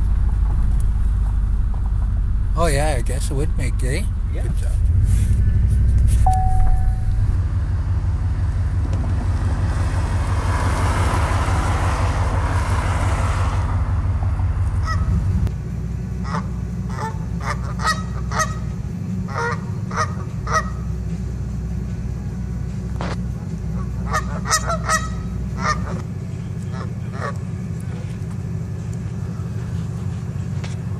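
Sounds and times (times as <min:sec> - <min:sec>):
car engine rumble inside cabin: 0:00.0 - 0:30.9
low hum: 0:00.0 - 0:30.9
geese honking: 0:14.8 - 0:15.2, 0:16.2 - 0:20.9, 0:23.0 - 0:27.5.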